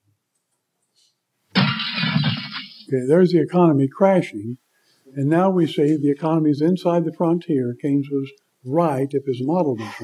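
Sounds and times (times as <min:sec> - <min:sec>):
glass breaking crash: 0:01.6 - 0:02.9.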